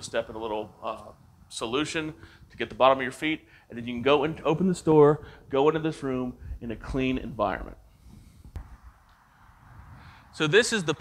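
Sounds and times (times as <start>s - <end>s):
faint low rumble and hiss: 0.0s - 11.0s.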